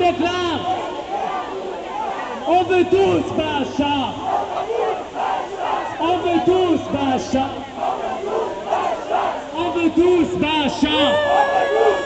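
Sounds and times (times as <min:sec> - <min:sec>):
crowd chanting: 0:00.7 - 0:02.5, 0:04.1 - 0:09.6, 0:10.8 - 0:12.0
leader calling out: 0:10.7 - 0:12.0.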